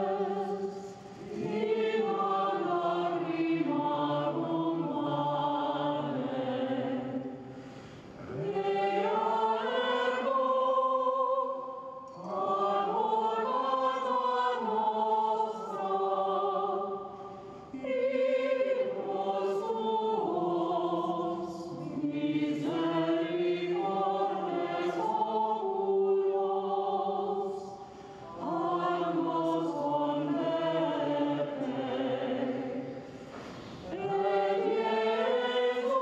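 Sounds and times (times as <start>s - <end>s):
singers breathing: 7.3s - 8.2s.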